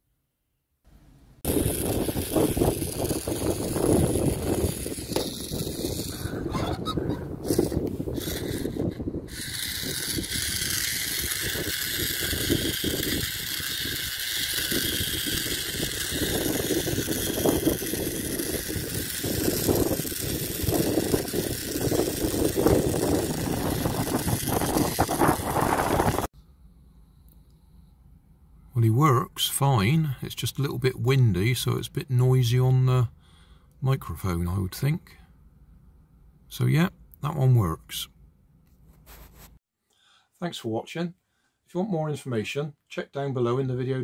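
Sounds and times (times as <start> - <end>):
small motor whining: 1.4 - 26.3
wind buffeting microphone: 1.5 - 26.3.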